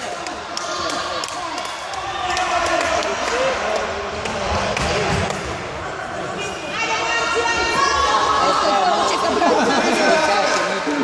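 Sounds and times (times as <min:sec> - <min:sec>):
crowd voices in hall: 0:00.0 - 0:11.0.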